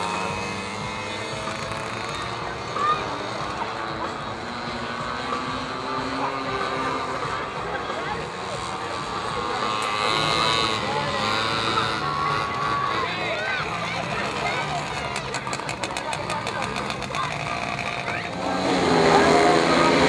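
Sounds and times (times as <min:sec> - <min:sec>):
minibike engines buzzing: 0:00.0 - 0:20.0
people's voices: 0:00.0 - 0:20.0.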